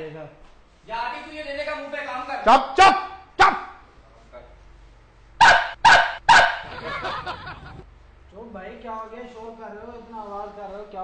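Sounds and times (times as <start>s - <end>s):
dog barking: 5.4s - 6.7s.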